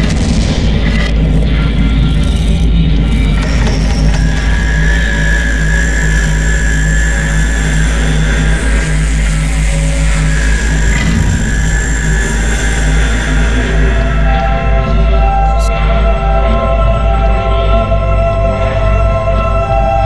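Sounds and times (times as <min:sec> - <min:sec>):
dense mechanical texture: 0:00.0 - 0:14.1
loud low rumble: 0:00.0 - 0:15.2
high held tone: 0:03.5 - 0:17.3.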